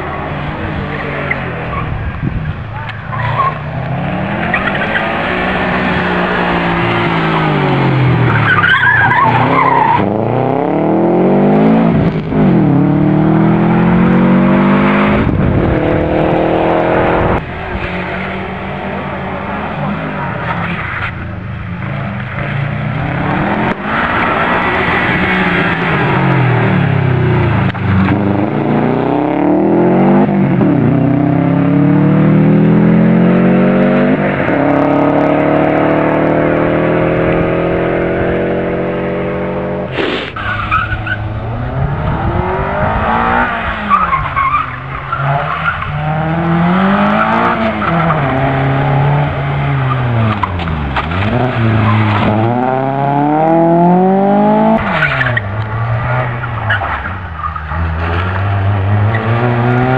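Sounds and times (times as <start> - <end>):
rally car engine upshifting: 0.0 - 59.9
tyre squeal: 8.3 - 10.0, 40.0 - 41.3
hatchback engine revving: 21.8 - 59.9.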